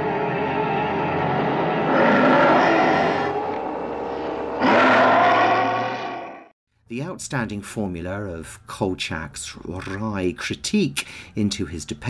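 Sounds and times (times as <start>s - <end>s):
dramatic horror music: 0.0s - 6.5s.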